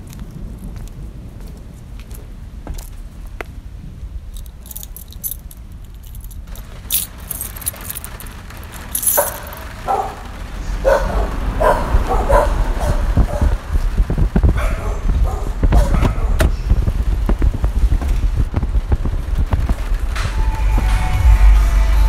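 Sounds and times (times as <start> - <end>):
low rumble: 0.0 - 22.0.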